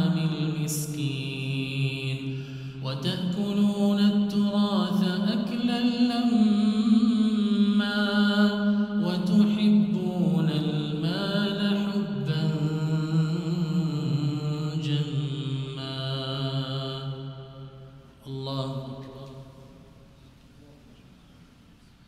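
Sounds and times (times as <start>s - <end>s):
man chanting recitation into microphone: 0.0s - 17.5s, 18.2s - 20.0s.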